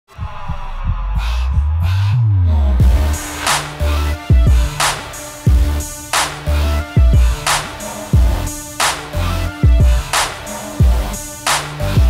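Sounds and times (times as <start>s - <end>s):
deep bass thumps: 0.2s - 3.2s.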